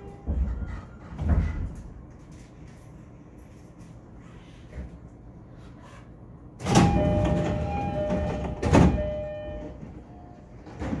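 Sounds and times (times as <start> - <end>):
two-tone door chime: 6.6 - 10.4.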